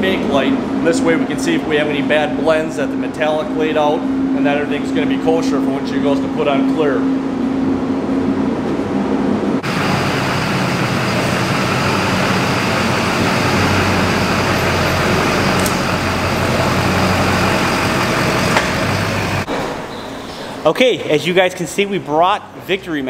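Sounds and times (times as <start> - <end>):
steady hum: 0.0 - 23.0
diesel pickup engine idling: 9.6 - 19.5.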